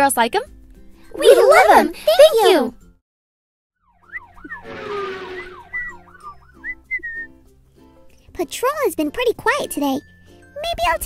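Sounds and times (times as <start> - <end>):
police siren wailing: 3.9 - 6.7
brief whoosh: 4.4 - 6.2.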